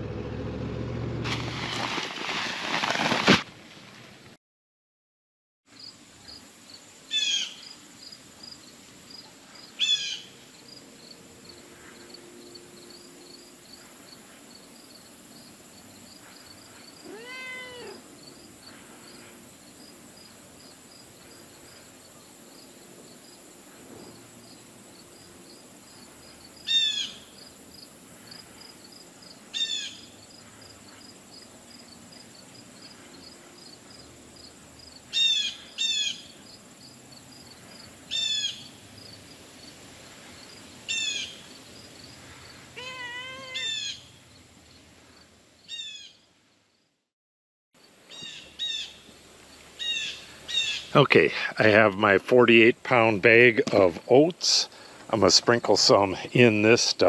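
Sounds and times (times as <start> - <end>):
short high animal calls: 17.0 - 18.0, 42.7 - 44.0
lower arched animal call: 42.7 - 44.1.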